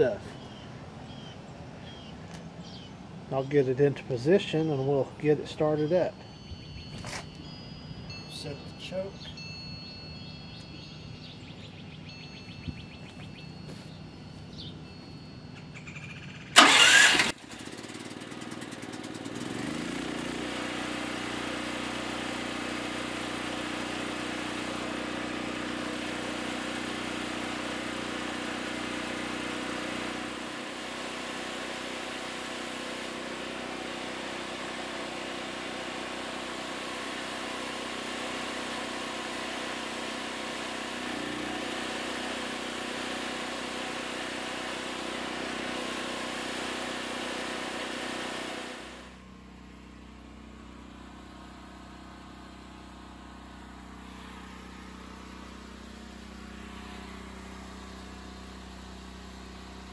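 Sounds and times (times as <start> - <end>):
generator engine running: 0.0 - 59.9
generator engine cranking: 16.2 - 51.2.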